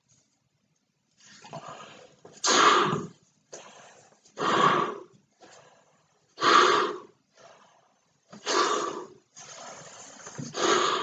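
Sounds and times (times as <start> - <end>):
heavy strained breaths: 1.4 - 11.0
man blowing up balloon: 2.4 - 3.2, 4.4 - 5.1, 6.4 - 7.2, 8.4 - 11.0.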